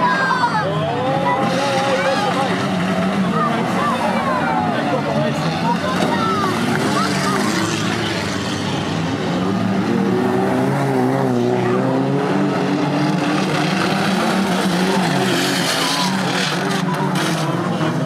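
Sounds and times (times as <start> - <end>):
car engines revving: 0.0 - 18.0
crowd voices din: 0.0 - 18.0.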